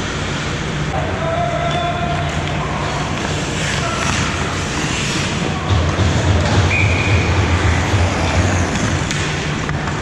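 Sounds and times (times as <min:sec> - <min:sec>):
ice hockey game rumble: 0:00.0 - 0:10.0.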